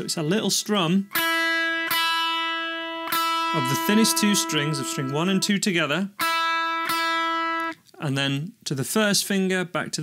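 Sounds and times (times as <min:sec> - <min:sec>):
electric guitar strings strummed: 0:01.1 - 0:05.6, 0:06.2 - 0:07.8.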